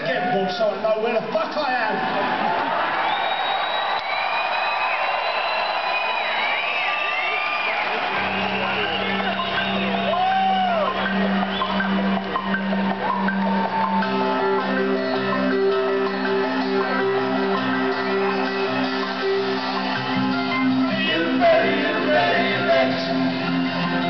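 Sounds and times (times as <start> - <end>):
crowd whooping and whistling: 2.0 - 24.0.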